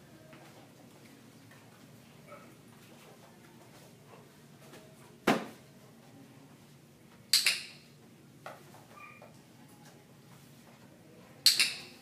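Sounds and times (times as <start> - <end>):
faint squeak: 8.9 - 9.4.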